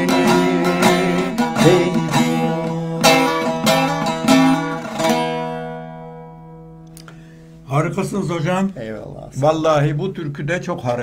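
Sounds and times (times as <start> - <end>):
plucked long-necked lute: 0.0 - 7.3.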